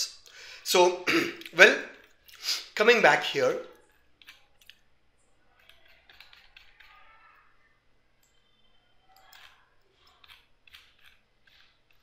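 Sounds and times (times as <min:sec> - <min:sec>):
computer mouse clicks: 0:05.6 - 0:07.0, 0:09.1 - 0:12.0.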